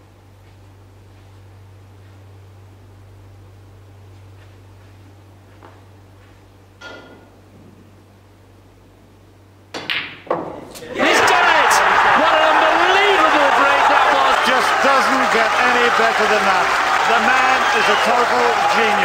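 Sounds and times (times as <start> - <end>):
mains hum: 0.0 - 19.0
crowd cheering and shouting: 10.8 - 19.0.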